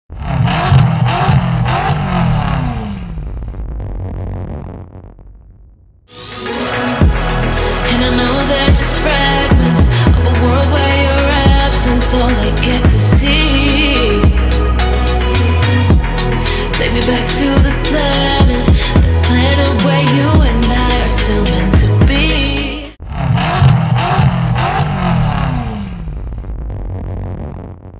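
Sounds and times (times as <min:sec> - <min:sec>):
car engine revving: 0:00.1 - 0:27.9.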